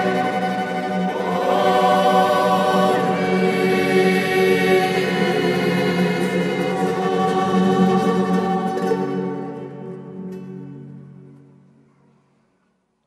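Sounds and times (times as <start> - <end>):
choir singing held chords: 0.0 - 10.2.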